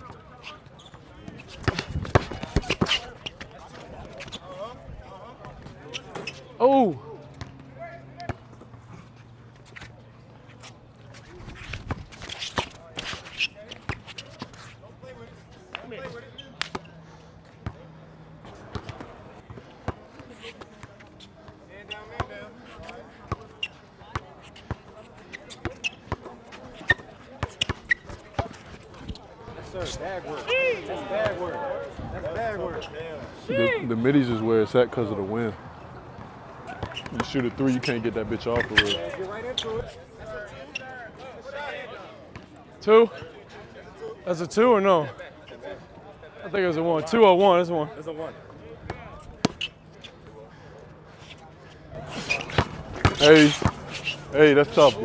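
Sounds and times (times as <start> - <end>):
spectators chattering: 0.0 - 55.0.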